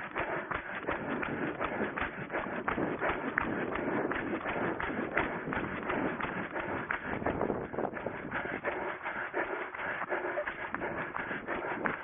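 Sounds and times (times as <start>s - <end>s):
heavy breathing: 0.0s - 12.0s
running footsteps on grass: 0.0s - 12.0s.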